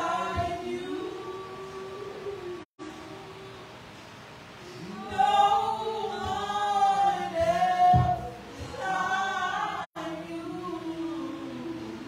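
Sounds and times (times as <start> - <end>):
worship singing: 0.0 - 4.0, 4.6 - 12.0
low drum thumps: 7.4 - 8.8.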